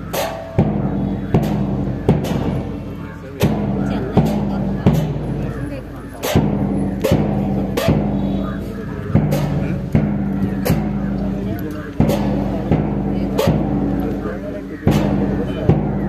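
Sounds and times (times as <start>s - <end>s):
march music: 0.0s - 16.0s
steady drum beat: 0.0s - 16.0s.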